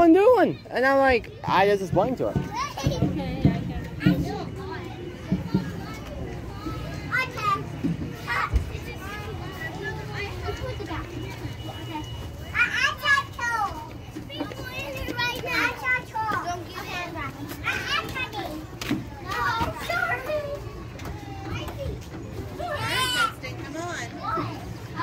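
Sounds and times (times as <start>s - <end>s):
children calling out and chattering: 0.0s - 25.0s.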